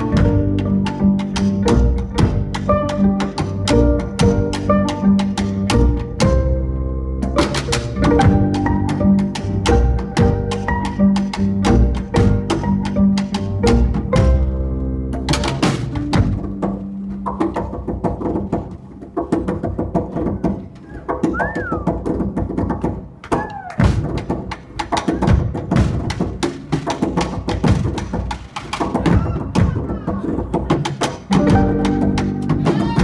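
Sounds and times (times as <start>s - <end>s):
drums and sticks rhythm: 0.0s - 33.0s
low instrument tones: 31.3s - 33.0s
sustained band notes: 31.3s - 33.0s.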